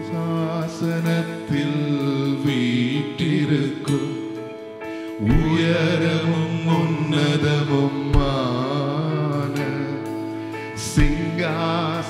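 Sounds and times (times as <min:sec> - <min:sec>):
man singing: 0:00.0 - 0:12.0
slow worship music: 0:00.0 - 0:12.0.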